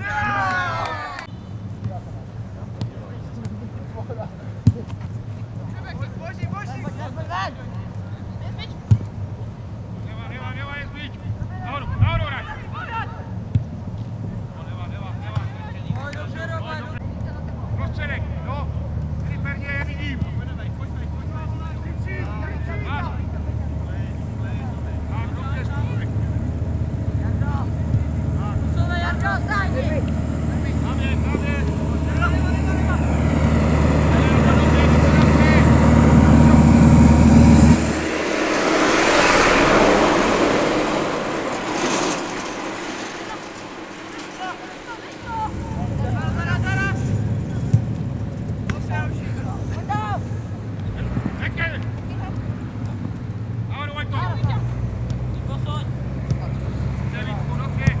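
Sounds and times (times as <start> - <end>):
passing vehicle: 20.6 - 58.0.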